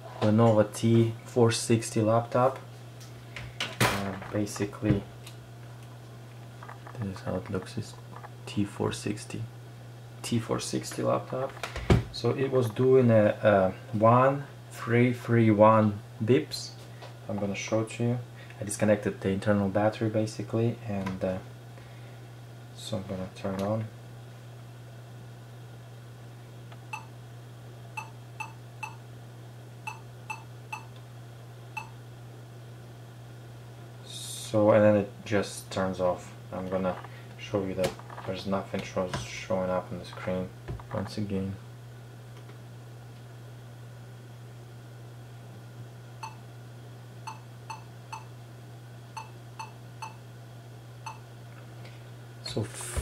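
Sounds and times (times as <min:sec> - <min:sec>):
short computer beeps: 0:28.0 - 0:29.0.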